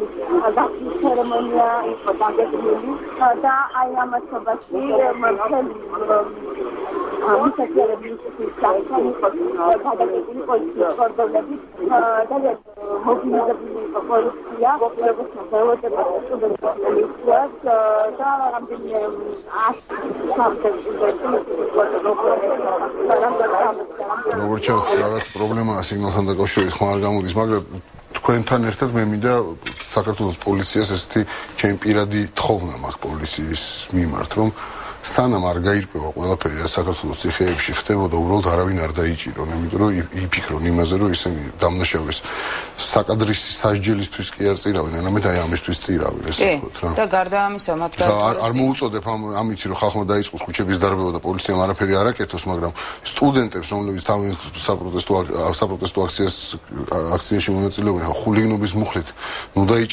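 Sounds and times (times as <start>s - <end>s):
person talking over telephone: 0.0s - 42.2s, 47.8s - 49.5s
man talking: 24.3s - 47.0s, 48.0s - 59.9s.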